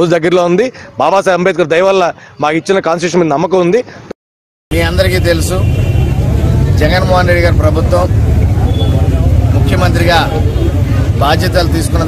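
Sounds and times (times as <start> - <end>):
man speaking: 4.7 - 5.8
low outdoor rumble: 4.7 - 12.0.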